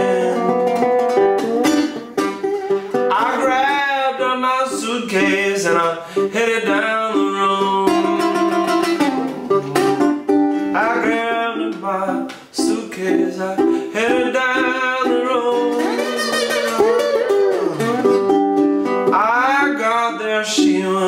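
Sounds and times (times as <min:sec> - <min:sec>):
ukulele fingerstyle blues: 0:00.0 - 0:21.0.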